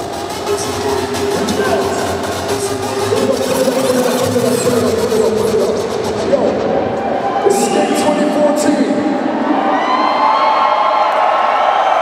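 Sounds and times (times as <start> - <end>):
electronic dance music: 0.0 - 9.6.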